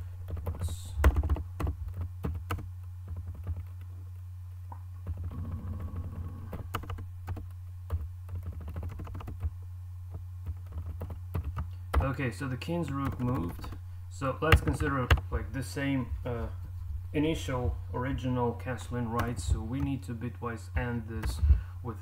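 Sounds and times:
low electrical hum: 0.0 - 22.0
typing on computer keyboard: 0.3 - 3.8, 5.0 - 9.5, 10.4 - 12.1, 13.0 - 13.8.

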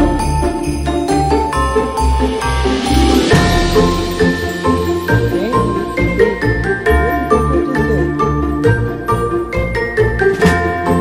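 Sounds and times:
christmas-style music with bells: 0.0 - 11.0.

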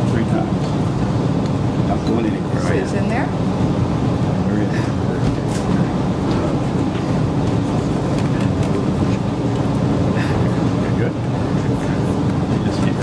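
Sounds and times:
low room noise rumble: 0.0 - 13.0
faint murmuring voices: 1.8 - 13.0.

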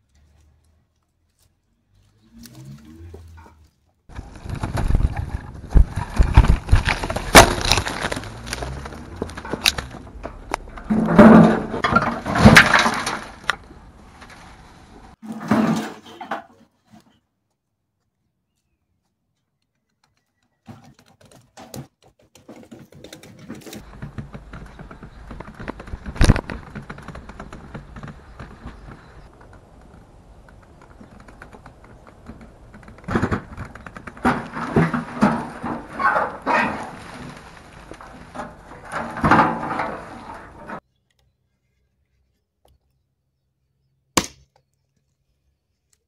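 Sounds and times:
dry vine canes crackling and snapping: 4.1 - 11.1, 23.8 - 40.0.

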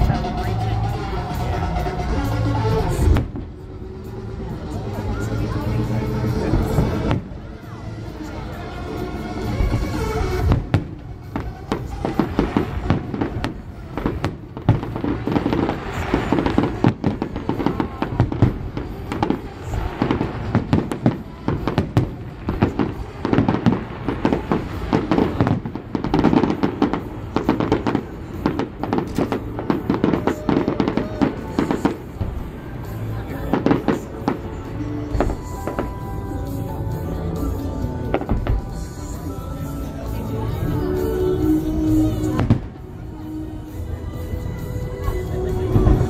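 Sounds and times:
fireworks bursting with loud bangs: 0.0 - 46.0.

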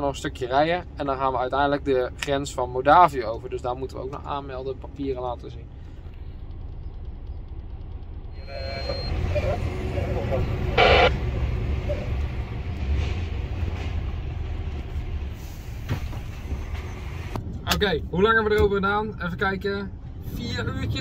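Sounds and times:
diesel truck engine rumble: 0.0 - 21.0
road noise: 0.0 - 21.0.

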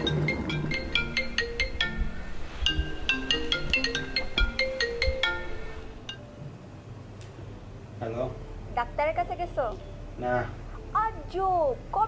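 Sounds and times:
phone ringtone bell-like notes: 0.0 - 6.2.

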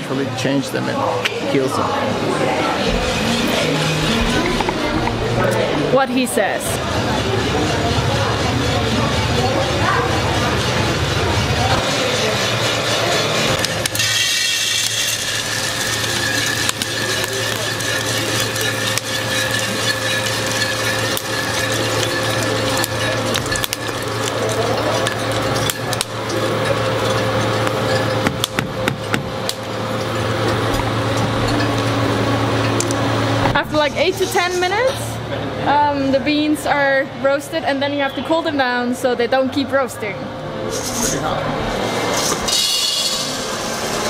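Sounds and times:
coffee roaster humming: 0.0 - 44.0
coffee beans clicking: 13.6 - 30.1.

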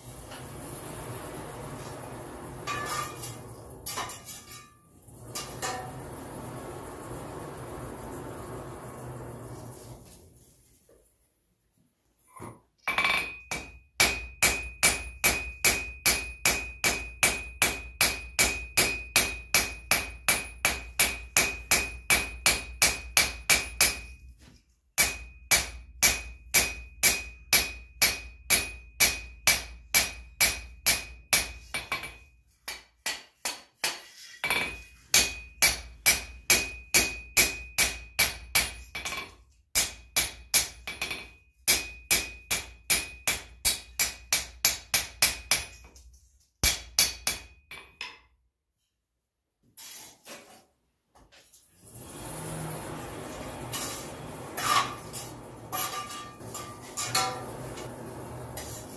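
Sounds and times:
hammer striking steel on anvil: 12.9 - 24.3, 25.0 - 46.0, 46.6 - 48.3, 54.6 - 57.8.

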